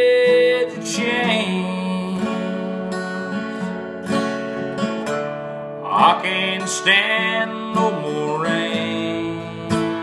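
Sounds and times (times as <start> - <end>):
person singing: 0.0 - 4.0, 5.8 - 10.0
acoustic guitar strumming chords: 0.0 - 10.0.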